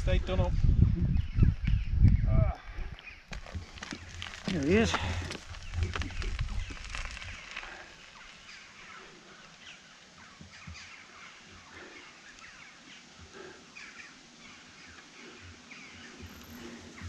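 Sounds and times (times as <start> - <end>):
birds chirping: 0.2 - 17.0.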